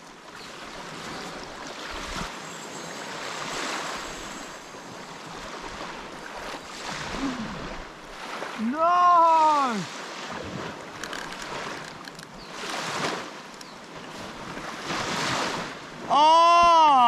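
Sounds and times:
small waves washing on sand: 0:00.0 - 0:17.0
wind on microphone: 0:00.8 - 0:06.1.

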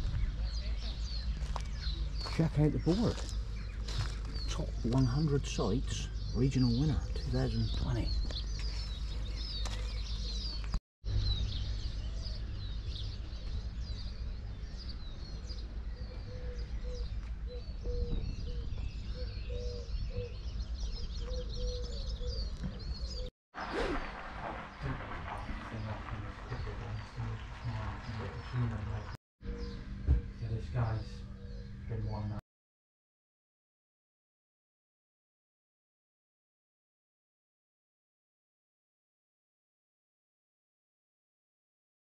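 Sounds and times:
small birds chirping and singing: 0:00.0 - 0:32.4
steady low rumble: 0:24.0 - 0:29.2.

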